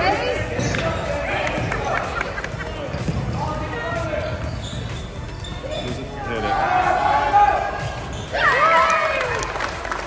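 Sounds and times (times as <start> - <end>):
spectators talking and shouting: 0.0 - 10.0.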